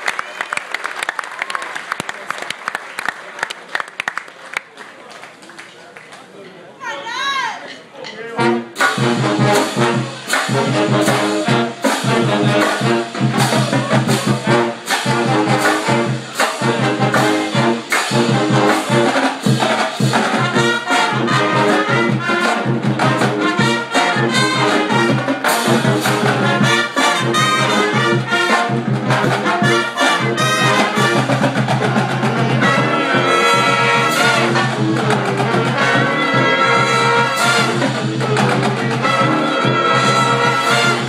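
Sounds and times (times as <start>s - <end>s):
pep band playing: 7.0s - 41.0s.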